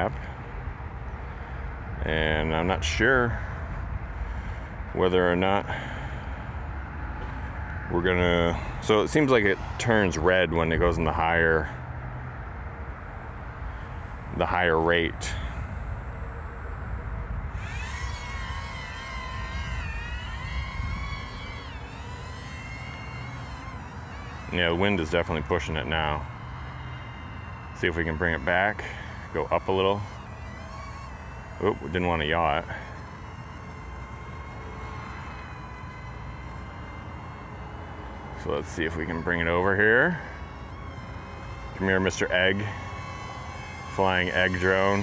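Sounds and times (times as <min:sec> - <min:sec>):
small drone motors whining: 0:00.0 - 0:45.0.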